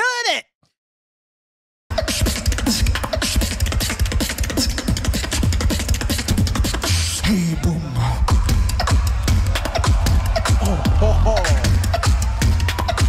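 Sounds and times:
beatboxing drum pattern: 1.9s - 13.0s
deep beatboxed bass line: 1.9s - 13.0s.

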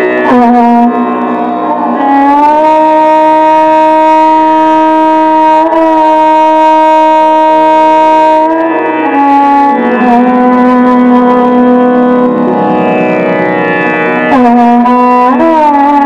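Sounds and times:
violin playing long bowed note: 0.0s - 16.0s.

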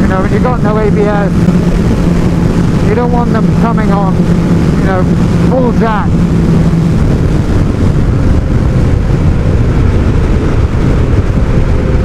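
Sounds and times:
motorcycle engine running: 0.0s - 12.0s
road and wind rumble: 0.0s - 12.0s.

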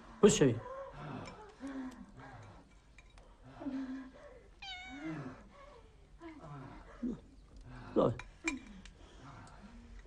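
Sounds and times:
cat meowing: 4.6s - 5.3s.

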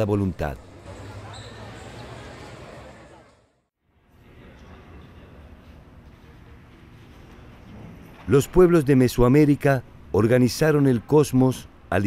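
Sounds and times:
street crowd voices: 0.6s - 3.7s.

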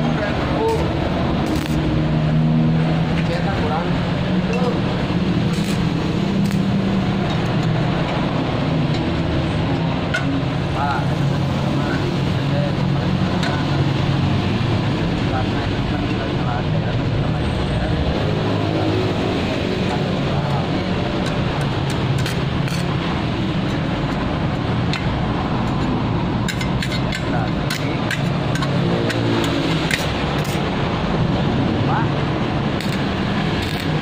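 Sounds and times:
low mechanical drone: 0.0s - 16.0s, 16.6s - 34.0s
sharp clicks: 0.7s - 1.9s.

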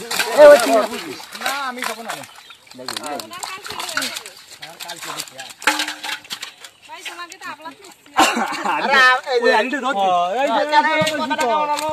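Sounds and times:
men talking and calling out: 0.0s - 11.9s.

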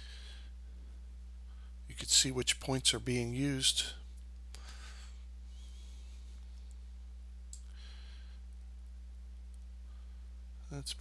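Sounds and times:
low electrical hum: 0.0s - 11.0s
soft breathy noise: 4.5s - 7.0s, 7.6s - 8.6s, 9.8s - 10.5s.

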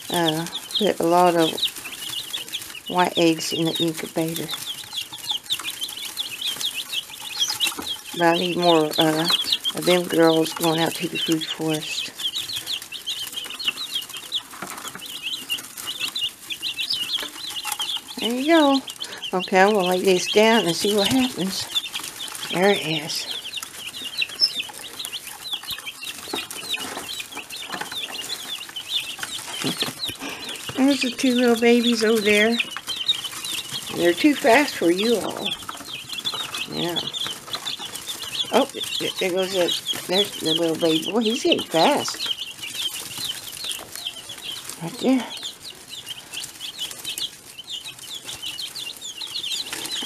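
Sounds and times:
chicks peeping: 0.0s - 50.0s.

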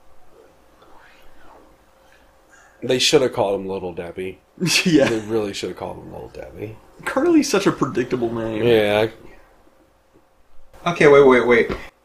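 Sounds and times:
faint film dialogue: 0.4s - 11.8s.

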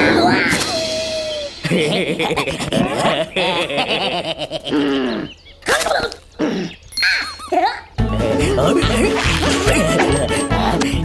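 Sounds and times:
cartoon swooping vocal calls: 0.0s - 1.6s.

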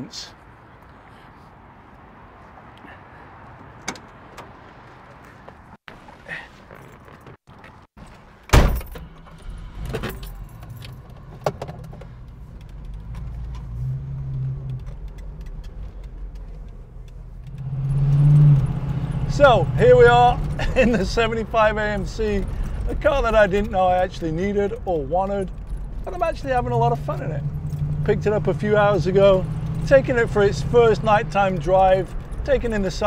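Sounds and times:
keys jingling: 6.8s - 13.5s, 20.4s - 26.5s
car engine starting and running: 8.0s - 33.0s.

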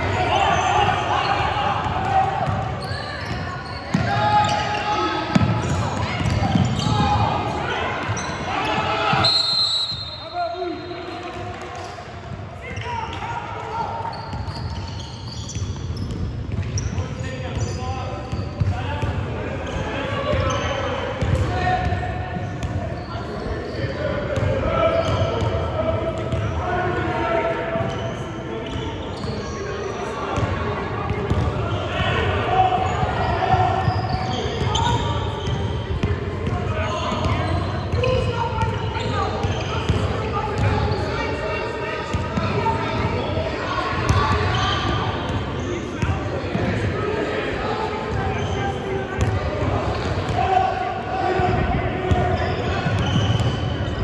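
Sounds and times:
indistinct voices echoing in gym: 0.0s - 54.0s.

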